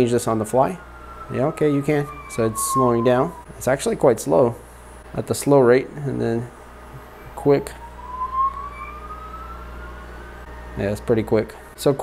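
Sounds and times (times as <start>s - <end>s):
propeller motor whine rising: 0.0s - 5.1s, 6.6s - 11.8s.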